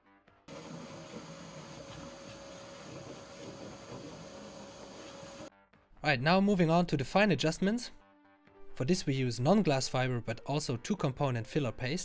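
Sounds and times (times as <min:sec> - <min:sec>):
quiet background music: 0:00.1 - 0:12.0
vacuum cleaner whining: 0:00.5 - 0:05.5.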